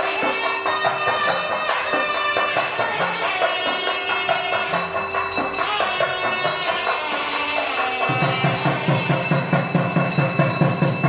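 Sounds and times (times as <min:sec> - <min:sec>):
bells ringing: 0:00.0 - 0:11.0
fast drumbeat: 0:00.0 - 0:11.0.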